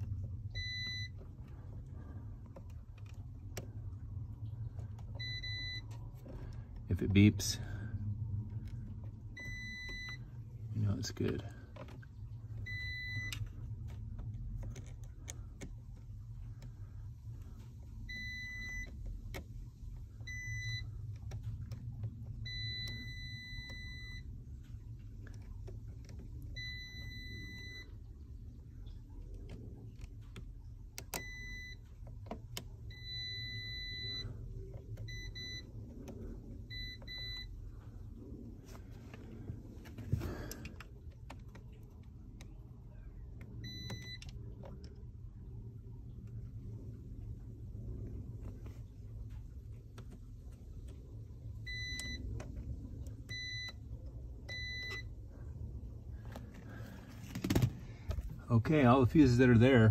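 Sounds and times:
faint low hum: 0.0s - 59.9s.

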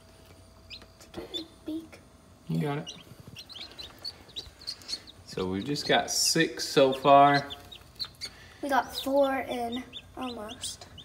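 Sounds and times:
chicks peeping: 0.2s - 1.8s, 2.5s - 11.0s.

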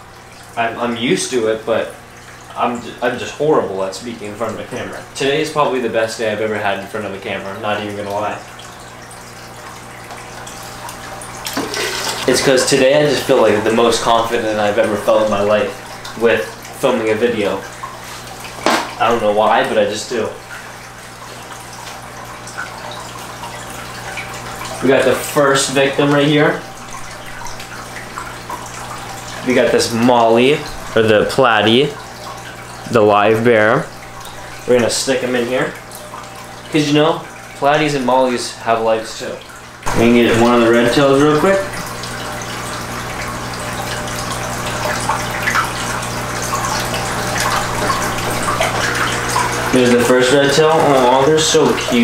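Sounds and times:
aquarium water trickling: 0.0s - 52.0s
low electrical hum: 0.0s - 52.0s.

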